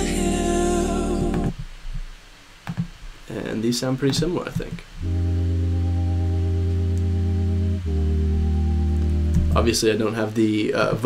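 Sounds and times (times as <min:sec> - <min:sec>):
synthesizer chords with bass: 0:00.0 - 0:01.6, 0:05.0 - 0:09.8.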